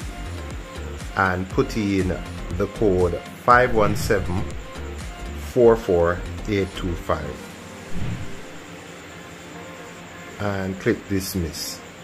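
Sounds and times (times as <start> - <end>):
quiet background music with held tones: 0.0 - 12.0.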